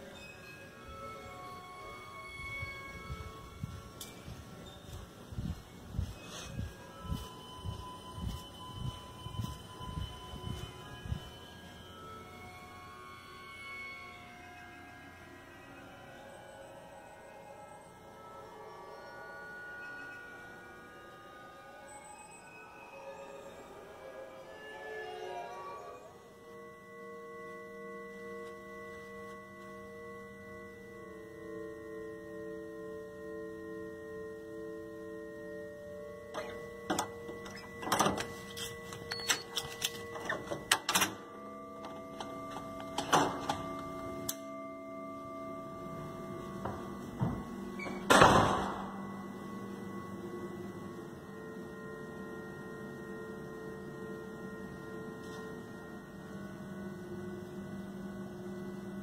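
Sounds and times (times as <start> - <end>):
steady multi-tone hum: 0.0 - 59.0
loud thump: 48.1 - 48.9.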